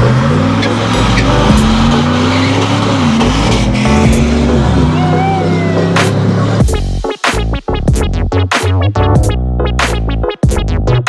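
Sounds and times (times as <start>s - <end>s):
car engine revving: 0.0s - 7.0s
tyres squealing: 0.4s - 6.5s
voices: 4.9s - 6.1s.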